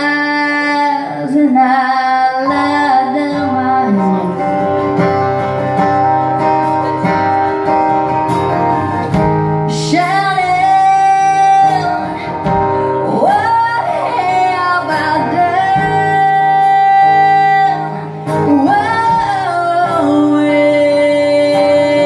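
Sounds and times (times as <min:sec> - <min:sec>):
woman singing: 0:00.0 - 0:04.9, 0:09.7 - 0:22.0
live band playing: 0:00.0 - 0:22.0.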